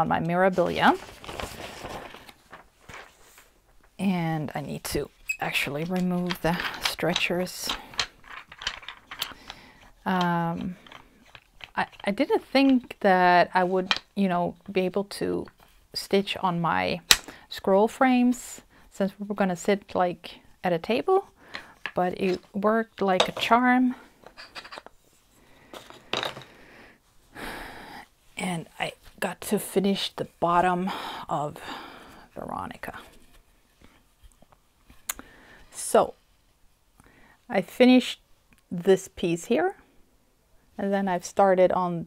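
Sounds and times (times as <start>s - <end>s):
fabric rustling and handling: 0.3s - 4.0s
small clicks and knocks: 5.9s - 12.8s.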